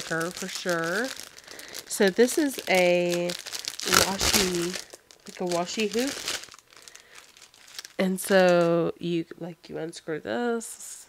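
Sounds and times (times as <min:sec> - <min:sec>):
plastic packaging crinkling: 0:00.0 - 0:08.9.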